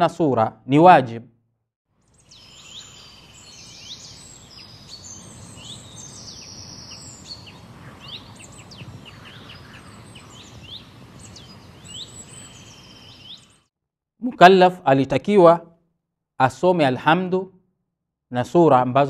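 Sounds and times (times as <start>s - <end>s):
outdoor background hiss: 2.0s - 13.5s
small birds chirping: 2.0s - 13.7s.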